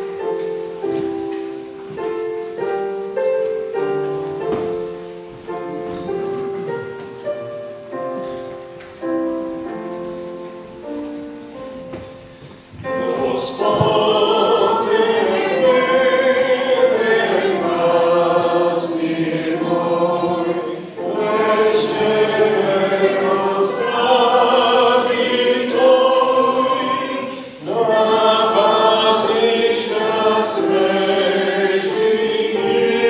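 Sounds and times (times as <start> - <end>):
congregation singing a hymn: 0.0 - 33.0.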